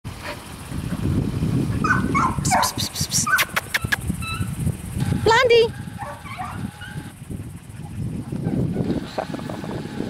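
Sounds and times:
dog whining and yipping: 1.8 - 4.5, 6.0 - 7.1
sharp clicks: 2.8 - 4.1.

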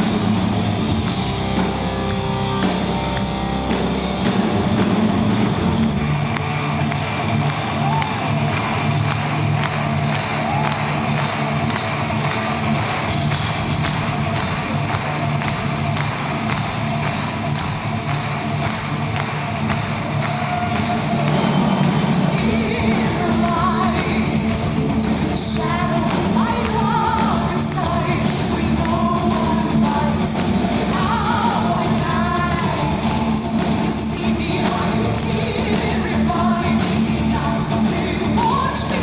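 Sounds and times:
live metal band playing: 0.0 - 39.0
woman singing: 22.2 - 39.0.

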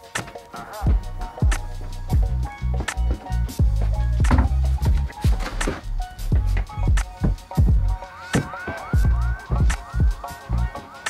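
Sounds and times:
kick-drum beat music: 0.0 - 11.0.

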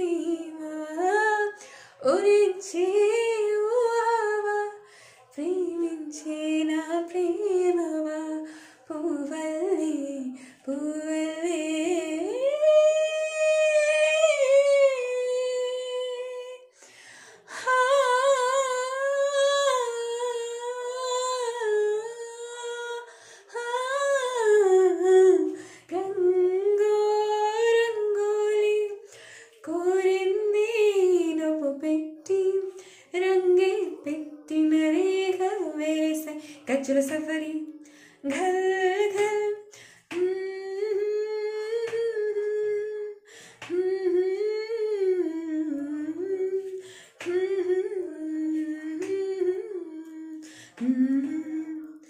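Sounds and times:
woman singing unaccompanied: 0.0 - 16.7, 17.4 - 52.0
quick breath: 16.7 - 17.5, 29.1 - 29.6, 37.8 - 38.2, 43.3 - 43.7, 46.8 - 47.2, 50.4 - 50.8.

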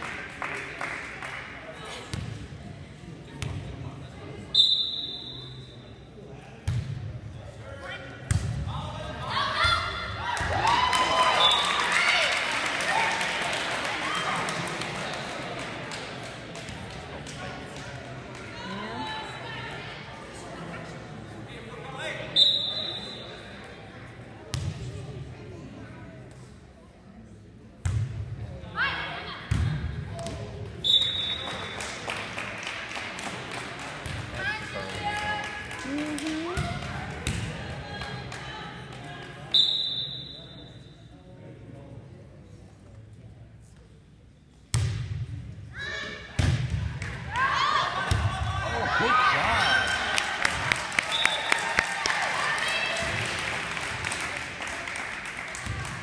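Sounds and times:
referee's whistle: 4.5 - 5.7, 22.3 - 23.4, 30.8 - 31.7, 39.5 - 40.8, 51.1 - 51.6
spectators cheering and shouting: 47.3 - 53.3.

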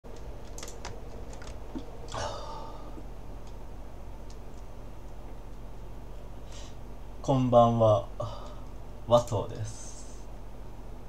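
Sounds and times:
keyboard keys clicking: 0.1 - 1.9
steady low hum: 0.1 - 11.0.

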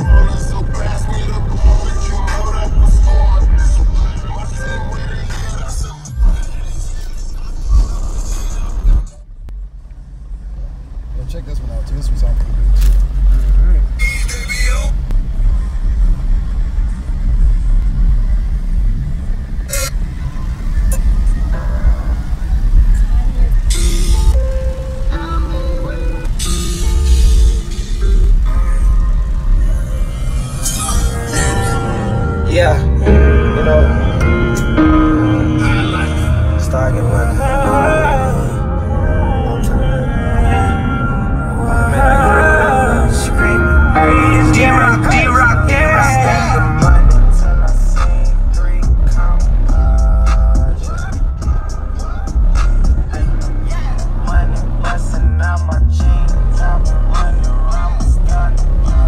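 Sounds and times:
bass-heavy music through car speakers: 0.0 - 11.1, 12.2 - 59.0.

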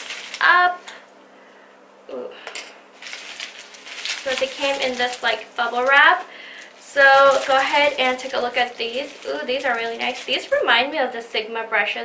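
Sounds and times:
plastic packaging crinkling: 0.0 - 1.0, 3.0 - 10.8.

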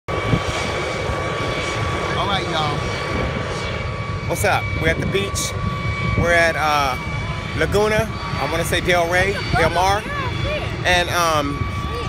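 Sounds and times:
helicopter engine and rotor: 0.1 - 12.0.

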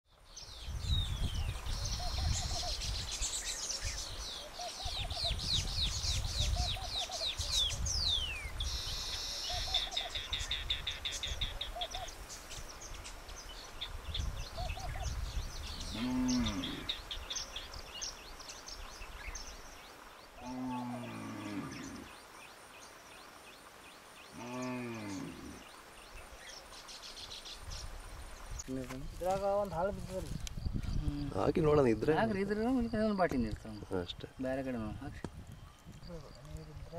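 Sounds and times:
low drawn-out bird calls: 0.3 - 23.3, 24.0 - 28.6.

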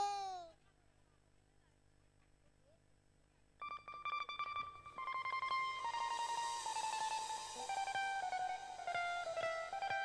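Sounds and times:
plucked string instrument melody: 3.8 - 10.0
high hiss: 5.8 - 10.0.

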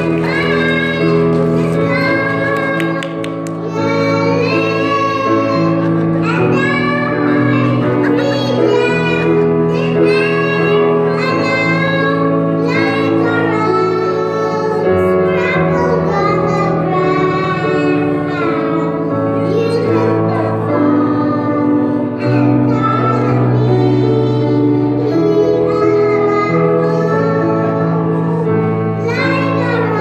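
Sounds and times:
children singing: 0.0 - 30.0.

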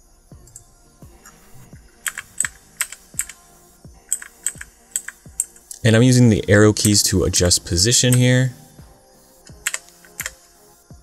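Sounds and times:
keyboard key clicks: 9.5 - 10.4.

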